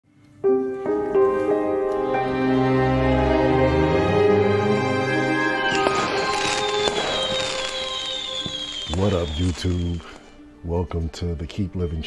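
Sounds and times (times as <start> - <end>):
background music: 0.1 - 12.0
falling whistle: 5.3 - 10.3
crackling fizzing sparks: 5.3 - 10.4.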